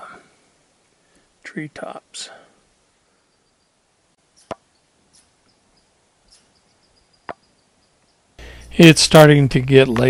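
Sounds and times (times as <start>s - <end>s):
faint high chirping: 3.0s - 8.8s.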